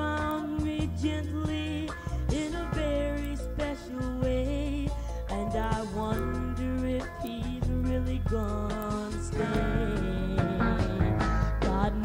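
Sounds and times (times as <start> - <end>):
country band music: 7.1 - 12.0.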